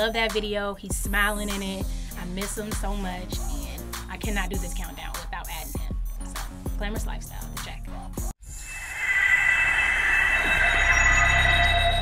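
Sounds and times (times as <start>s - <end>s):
high-pitched screeching tone: 8.4s - 12.0s
low rumble: 8.5s - 12.0s.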